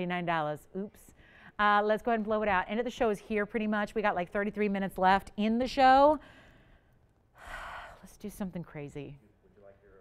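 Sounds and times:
woman speaking: 0:00.0 - 0:06.2, 0:08.0 - 0:09.2
woman breathing in: 0:06.2 - 0:08.1.

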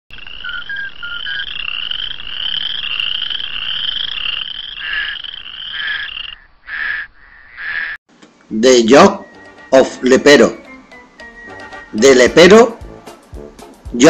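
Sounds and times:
frogs croaking: 0:00.1 - 0:08.0.

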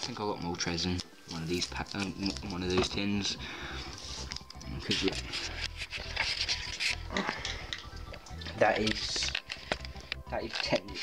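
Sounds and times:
camera handling rubbing: 0:04.2 - 0:07.1.

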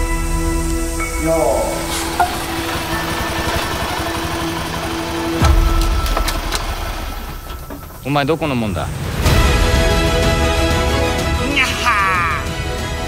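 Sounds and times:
motorbike engine riding by: 0:01.5 - 0:08.8.

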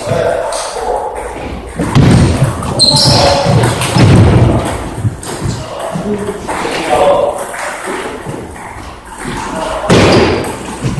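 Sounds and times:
heavy footsteps on hall floor: 0:01.2 - 0:06.6
sharp knocks: 0:01.7 - 0:06.0.

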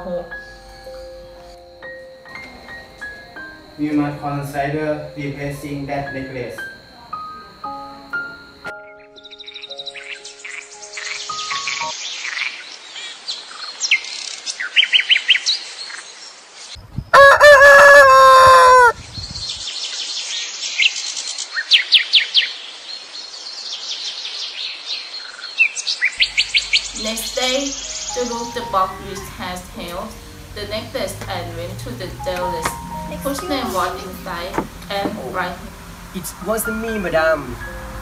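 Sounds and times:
small birds chirping: 0:08.5 - 0:17.1, 0:19.0 - 0:32.6
rooster crowing: 0:17.1 - 0:19.0.

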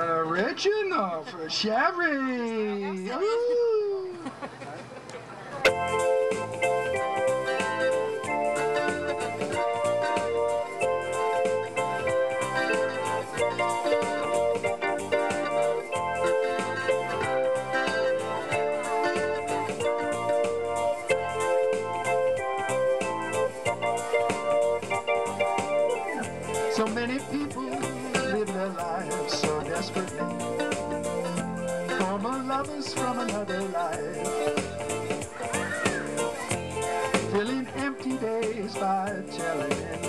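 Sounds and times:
electric piano playing: 0:05.7 - 0:40.0.

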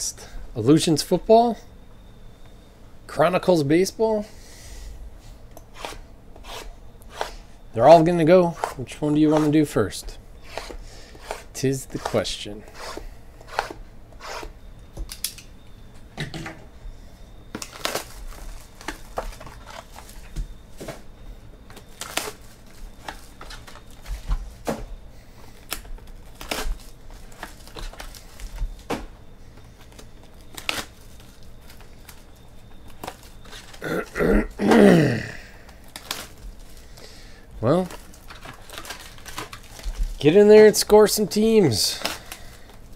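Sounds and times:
foil packs rustling: 0:17.5 - 0:34.1, 0:35.4 - 0:42.9.

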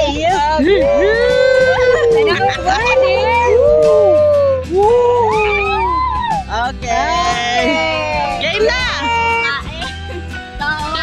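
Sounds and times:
voices whooping: 0:00.4 - 0:09.6.

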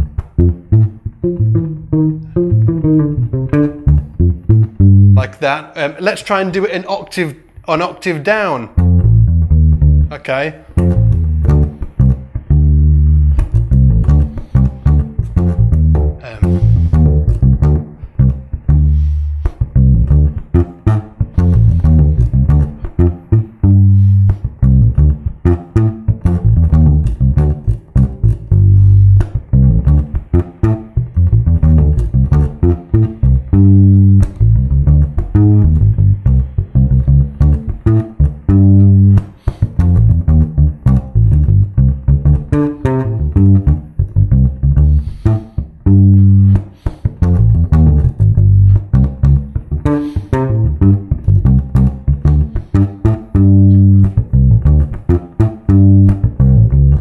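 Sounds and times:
electric bass guitar fingerstyle: 0:00.0 - 0:57.0.

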